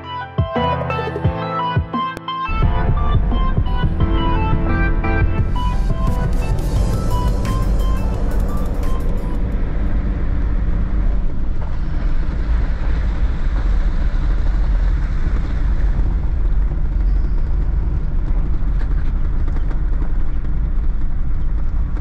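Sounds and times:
engine and road drone in cabin: 2.5 - 22.0.

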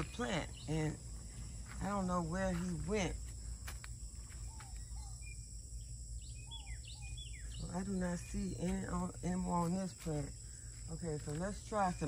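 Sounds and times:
bird chirps: 0.0 - 2.0, 4.2 - 9.8
high insect trill: 0.0 - 12.0.

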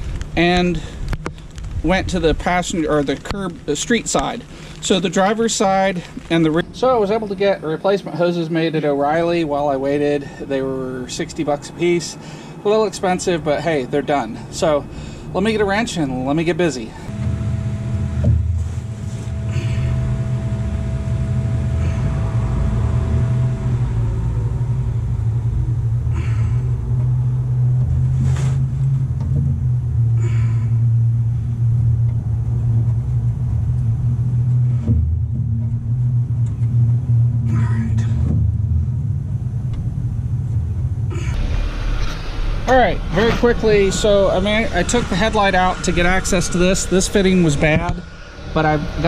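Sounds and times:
low mechanical rumble: 0.0 - 49.0.

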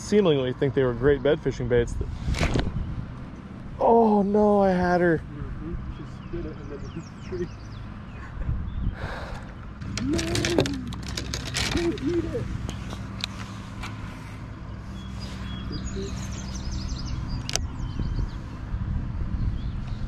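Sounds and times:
boat motor humming: 0.0 - 20.0
faint bird chirps: 14.7 - 18.5.

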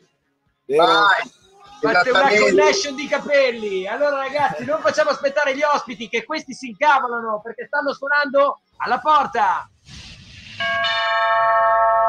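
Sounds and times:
doorbell chime: 10.6 - 12.0.

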